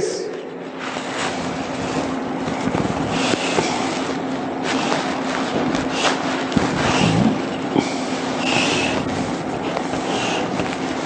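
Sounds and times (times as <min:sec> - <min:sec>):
low hum: 0:00.0 - 0:11.0
room noise hiss: 0:00.0 - 0:11.0
chalk scraping on blackboard: 0:08.4 - 0:11.0.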